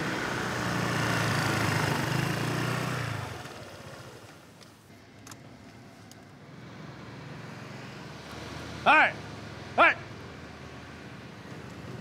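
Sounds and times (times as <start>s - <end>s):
motor scooter engine humming: 0.0s - 4.6s.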